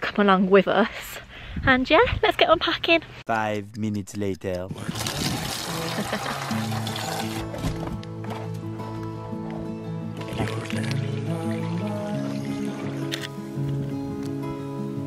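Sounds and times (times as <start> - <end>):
background music with held notes: 5.4 - 15.0.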